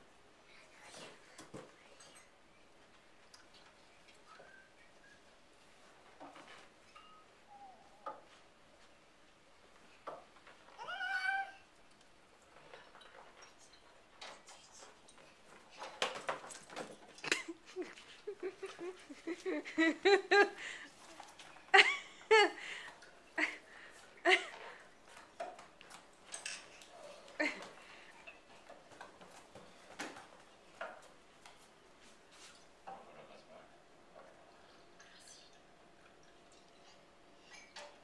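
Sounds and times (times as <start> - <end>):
small dog whining: 7.5 - 8.0, 10.8 - 11.7.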